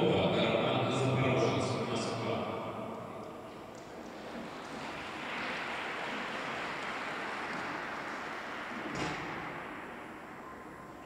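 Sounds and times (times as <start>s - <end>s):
audience applause echoing: 3.8s - 10.8s.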